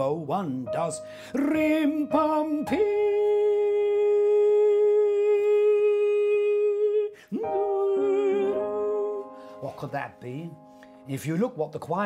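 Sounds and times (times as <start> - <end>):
digital piano chords and notes: 0.0 - 12.0
man humming: 2.8 - 9.4.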